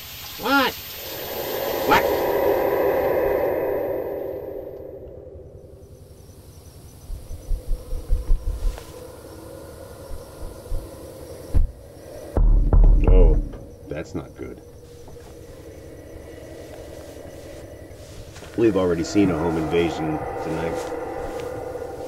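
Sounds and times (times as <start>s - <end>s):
low horror drone: 0.8s - 22.0s
soft low thumps: 7.0s - 8.8s, 11.5s - 13.8s.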